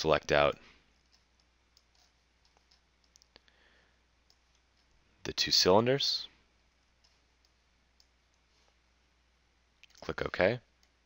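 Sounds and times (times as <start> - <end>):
faint mouse clicks: 0.5 - 3.6, 4.2 - 5.0, 6.7 - 8.8, 9.8 - 10.1.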